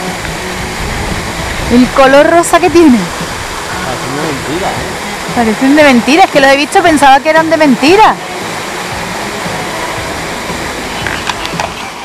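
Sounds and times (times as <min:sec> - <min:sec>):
waterfall pouring into pond: 0:00.0 - 0:12.0.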